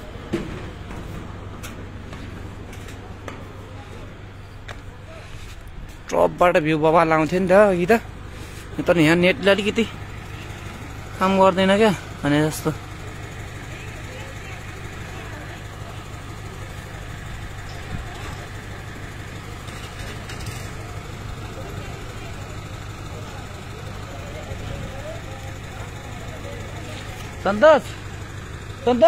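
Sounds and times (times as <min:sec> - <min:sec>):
crane engine humming: 0:00.0 - 0:29.0.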